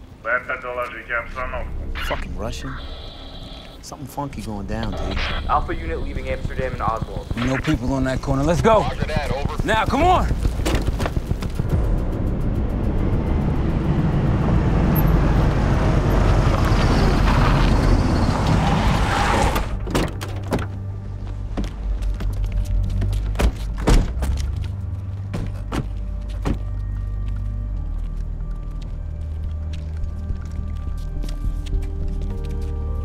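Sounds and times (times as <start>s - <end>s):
low music drone: 11.3s - 17.0s, 26.0s - 33.0s.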